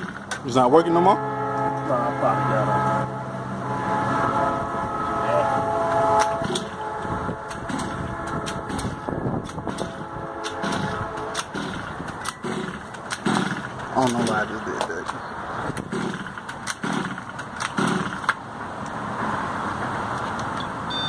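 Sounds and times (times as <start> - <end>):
small gas engine pull-started: 7.7 - 8.0, 10.6 - 14.6, 15.8 - 18.4.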